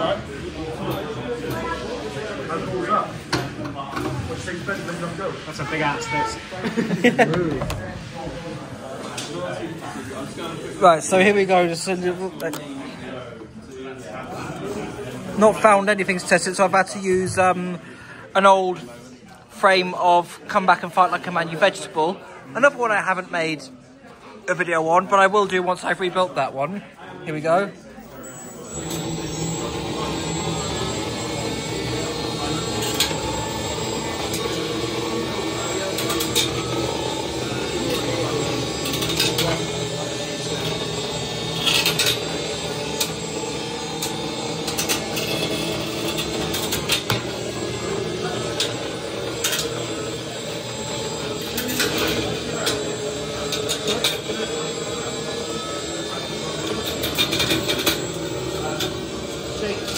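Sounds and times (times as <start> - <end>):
spinner weapon motor whine: 28.0 - 59.9.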